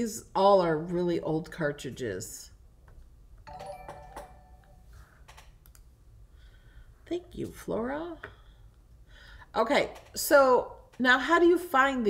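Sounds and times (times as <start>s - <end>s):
chime-like alert tone: 3.5s - 5.0s.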